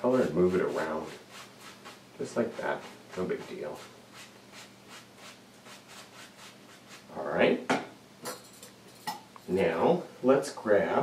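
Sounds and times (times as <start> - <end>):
paintbrush swishing on canvas: 0.1 - 7.2.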